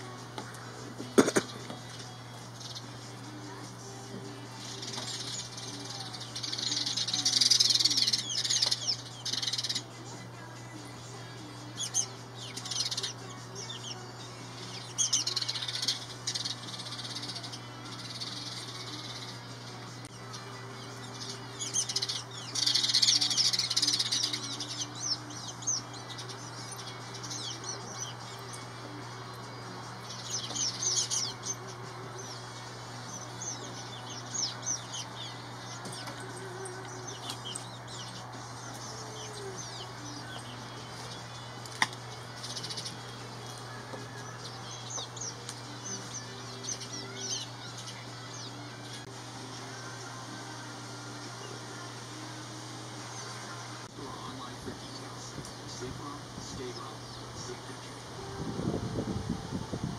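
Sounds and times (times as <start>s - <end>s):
sparrows chirping: 0.0s - 59.8s.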